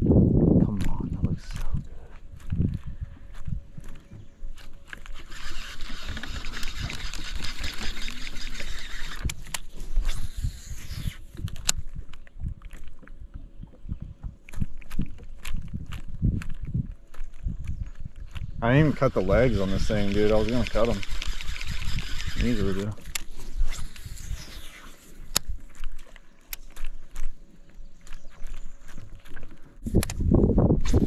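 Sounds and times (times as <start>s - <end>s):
fishing reel whirring: 4.5s - 12.1s, 18.6s - 27.3s.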